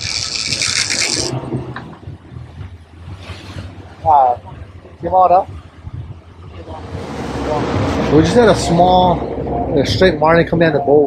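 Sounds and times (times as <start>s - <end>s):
fishing reel clicker buzzing: 0.0s - 1.3s
outboard engines running: 0.0s - 11.0s.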